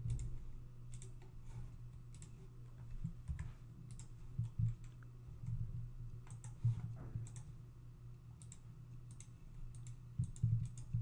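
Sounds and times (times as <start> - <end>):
computer mouse clicking: 0.0 - 2.4, 3.2 - 5.6, 6.2 - 7.5, 8.4 - 11.0
low steady hum: 0.0 - 11.0.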